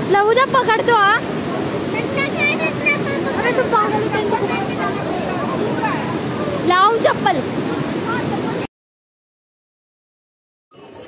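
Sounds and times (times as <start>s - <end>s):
stream cascading over rocks: 0.0s - 8.7s.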